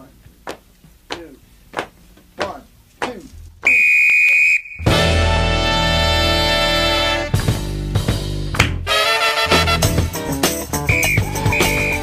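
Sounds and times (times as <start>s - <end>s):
steady high beep: 3.7s - 5.0s, 10.9s - 12.0s
music: 4.9s - 12.0s.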